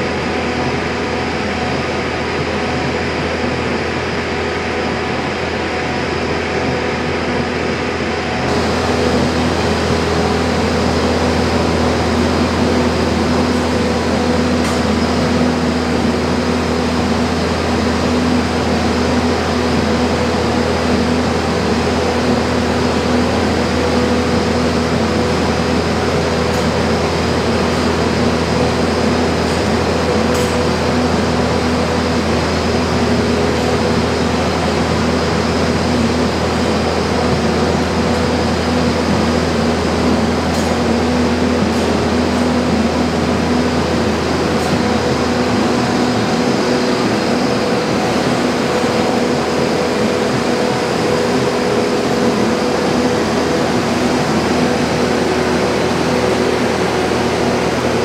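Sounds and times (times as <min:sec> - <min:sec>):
truck engine humming: 0:00.0 - 0:58.0.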